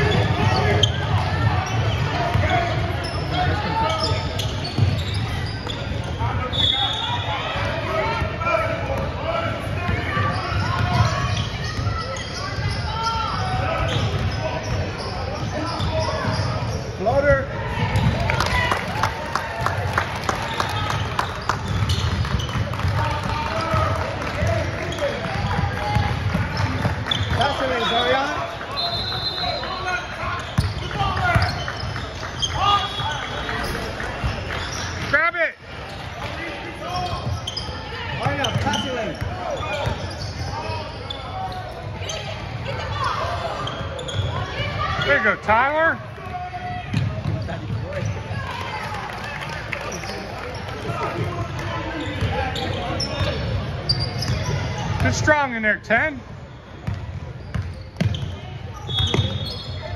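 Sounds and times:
sneakers squeaking: 0.0 - 19.0, 19.6 - 55.6, 56.2 - 59.9
indistinct chatter: 0.0 - 55.5.

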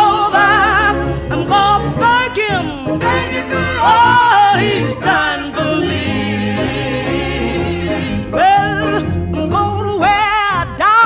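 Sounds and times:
gospel singing with accompaniment: 0.0 - 11.0.

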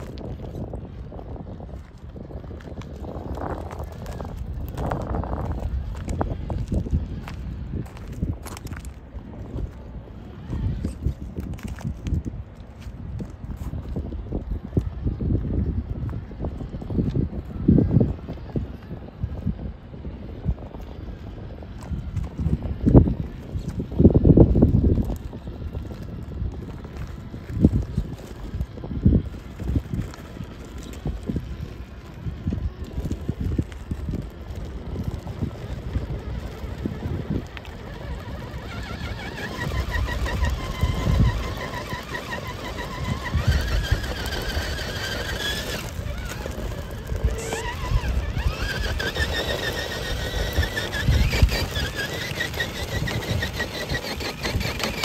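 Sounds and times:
tyres crunching over rocks: 0.0 - 17.5, 21.6 - 55.0
electric motor whine: 14.6 - 55.0.

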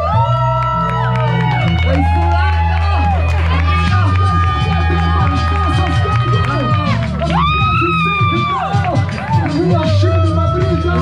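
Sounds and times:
heavy bass line: 0.0 - 11.0
person rapping into microphone: 0.0 - 11.0
rap song over club speakers: 3.5 - 11.0.

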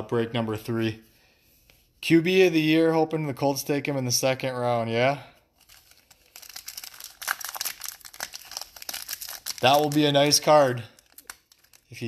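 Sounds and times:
foil wrappers crinkling and tearing: 5.6 - 12.0.

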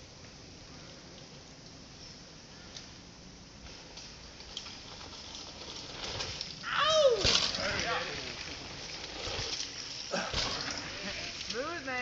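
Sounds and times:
steady background hiss: 0.0 - 12.0
person exclaiming oh: 6.6 - 7.4.

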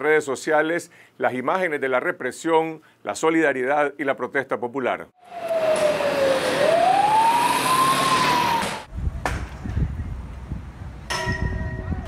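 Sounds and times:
loud street noise: 5.2 - 8.9
siren wailing: 5.2 - 8.9.

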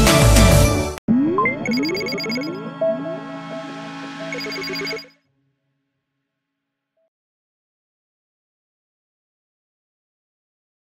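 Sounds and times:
electronic jingle with beeping tones: 1.1 - 5.2
rising electronic sweeps: 1.1 - 5.2.

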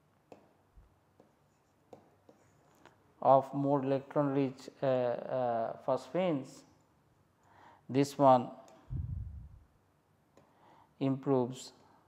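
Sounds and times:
stylus tapping on tablet: 0.3 - 0.6.

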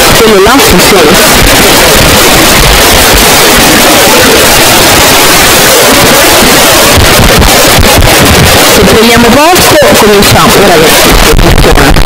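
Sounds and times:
loud rushing noise: 0.0 - 12.0.

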